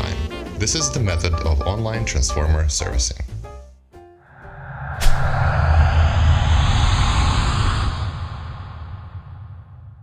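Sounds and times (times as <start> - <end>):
rushing whoosh with deep rumble: 4.3 - 10.0
sudden hit: 4.4 - 10.0.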